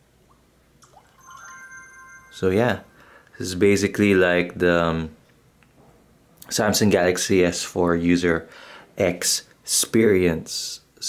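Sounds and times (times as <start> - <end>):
phone unlock chime: 0.8 - 3.2.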